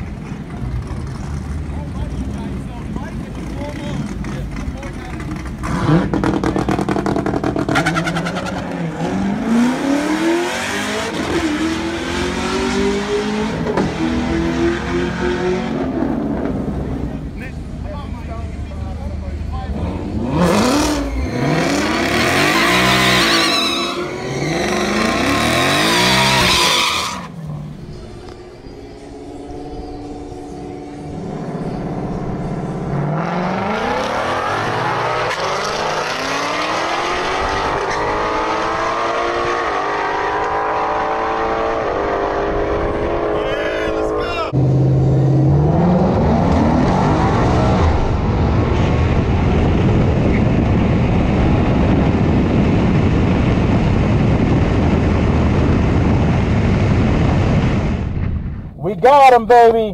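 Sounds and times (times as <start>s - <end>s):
car engine revving: 0.4s - 58.2s.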